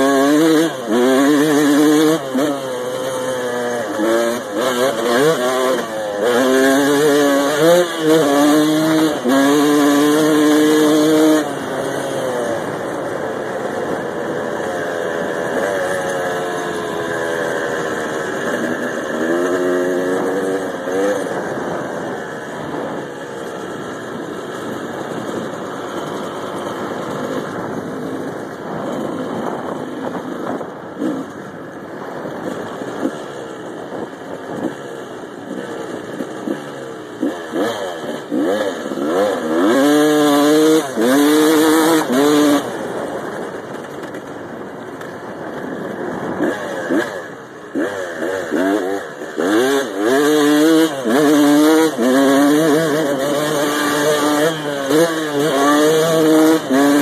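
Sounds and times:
two-stroke dirt bike engine: 0:00.0 - 0:57.0.

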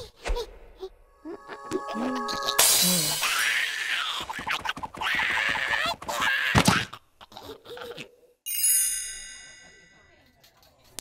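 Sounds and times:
bright high chime: 0:08.5 - 0:10.2.

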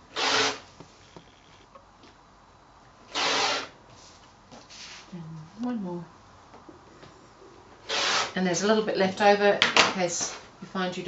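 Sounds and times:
rotary cutter slicing fabric: 0:00.0 - 0:00.7, 0:03.1 - 0:03.8, 0:07.8 - 0:08.4.

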